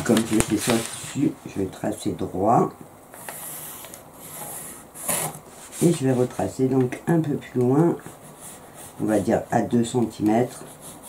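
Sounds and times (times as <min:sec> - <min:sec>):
pencil scratching on paper: 0:03.4 - 0:06.2, 0:10.5 - 0:11.0.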